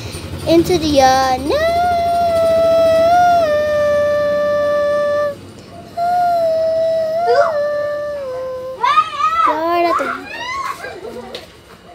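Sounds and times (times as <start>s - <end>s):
girl singing long high notes: 0.6s - 5.4s, 6.0s - 10.0s.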